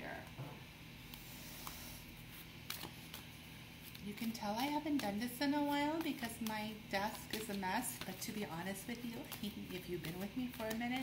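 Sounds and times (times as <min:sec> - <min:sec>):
cards clicking and tapping: 0:03.9 - 0:11.0.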